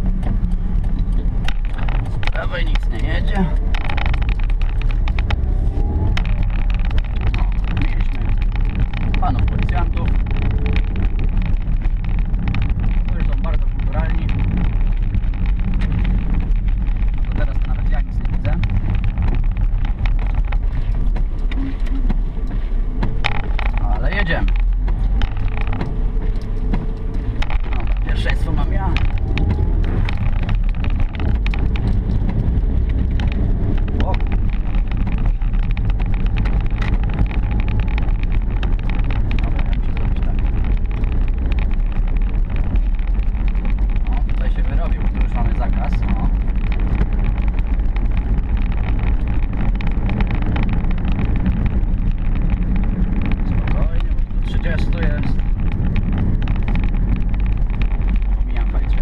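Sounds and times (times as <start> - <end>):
car engine and tyre drone: 0.0 - 59.0.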